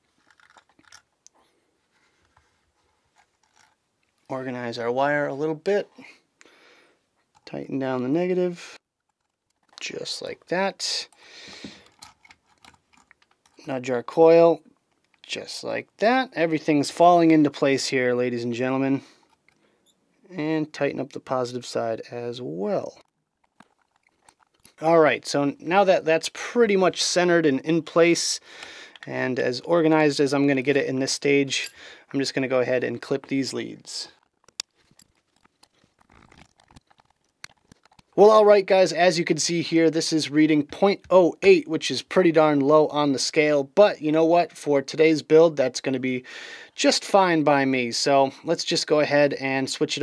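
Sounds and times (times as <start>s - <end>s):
man talking: 4.3s - 6.2s, 7.5s - 8.8s, 9.8s - 11.2s, 13.6s - 14.6s, 15.2s - 19.1s, 20.3s - 23.0s, 24.8s - 28.4s, 29.0s - 34.2s, 38.2s - 50.0s
small metal tools clicking: 11.8s - 13.6s, 34.1s - 38.2s.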